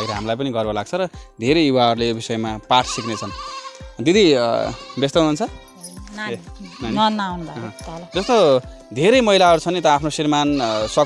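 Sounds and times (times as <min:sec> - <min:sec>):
goats bleating: 0:00.0 - 0:00.3, 0:02.7 - 0:05.4, 0:06.3 - 0:08.6, 0:10.3 - 0:11.0
background music: 0:00.0 - 0:11.0.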